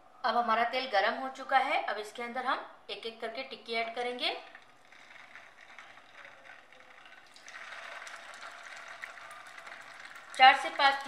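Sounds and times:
patties sizzling in hot oil: 4.2s - 11.0s.

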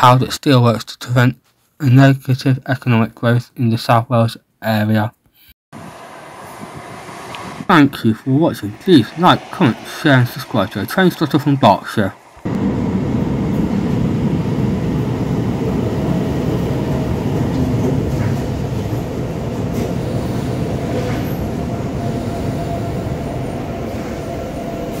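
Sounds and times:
train running past: 5.8s - 25.0s.

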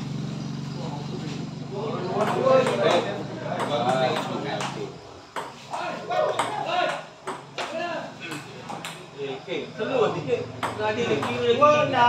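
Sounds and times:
people talking: 0.7s - 12.0s
ping pong ball clicks: 2.2s - 9.0s, 10.6s - 11.4s.

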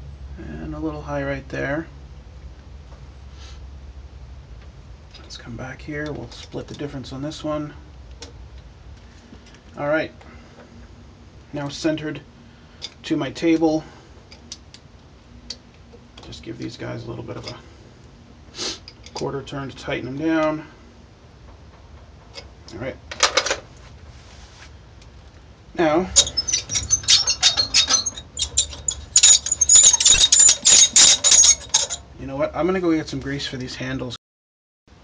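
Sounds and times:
crank handles squeaking: 26.0s - 32.1s.

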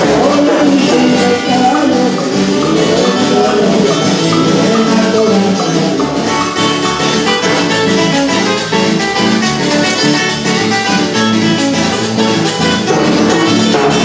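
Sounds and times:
plucked strings dance music: 0.0s - 14.0s.

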